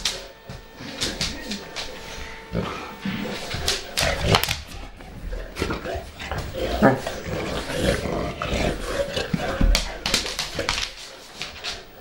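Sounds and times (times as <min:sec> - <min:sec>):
dogs making pig-like noises: 0:02.5 - 0:11.0.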